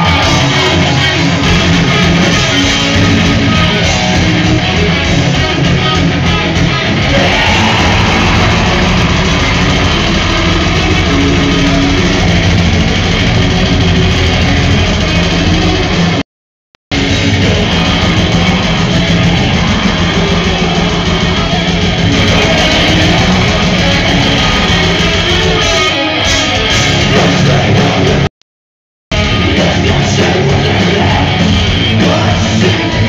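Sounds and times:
metal band playing live: 0.0s - 16.2s, 16.9s - 28.3s, 29.1s - 33.0s.

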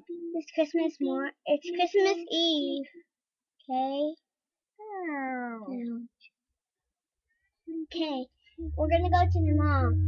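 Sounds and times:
child voicing a toy: 8.6s - 10.0s.

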